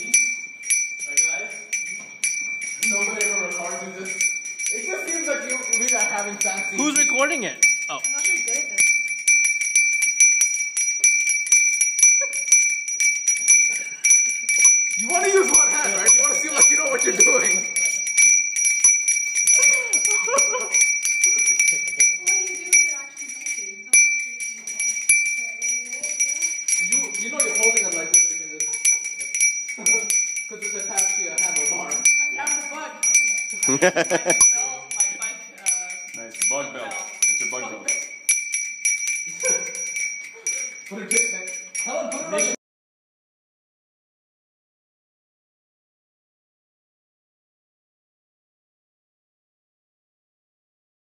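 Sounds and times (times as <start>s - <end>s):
bicycle bells ringing: 0.0s - 42.6s.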